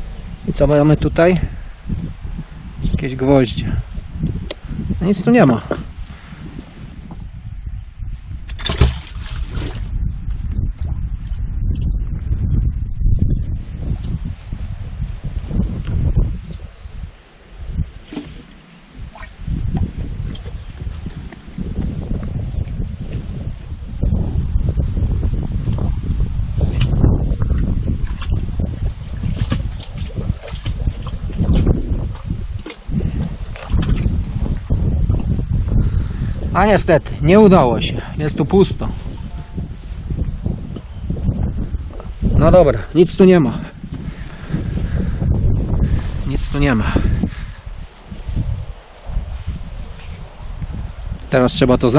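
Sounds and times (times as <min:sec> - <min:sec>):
wind buffeting microphone: 0:00.0 - 0:51.9.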